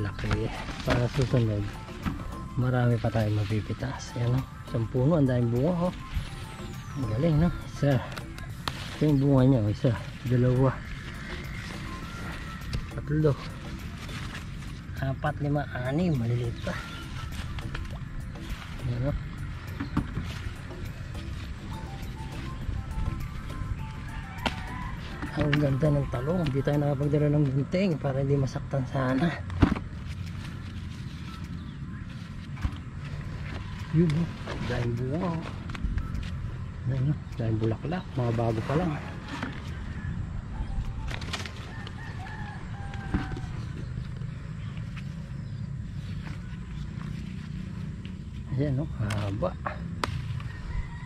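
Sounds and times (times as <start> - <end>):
leaf rustling: 0.0 - 51.0
rooster crowing: 23.8 - 25.8, 41.5 - 44.0, 50.3 - 51.0.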